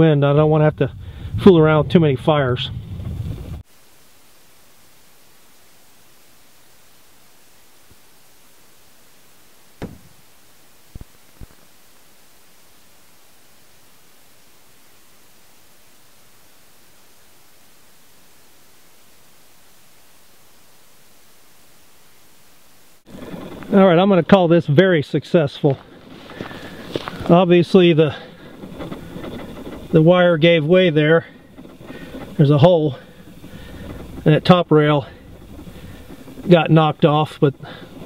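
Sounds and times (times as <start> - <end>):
steady hiss: 3.6 - 38.0
firework shell bang: 9.8 - 10.2.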